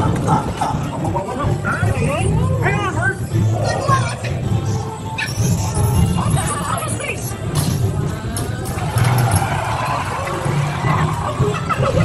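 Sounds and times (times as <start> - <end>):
faint ride soundtrack: 0.0 - 12.0.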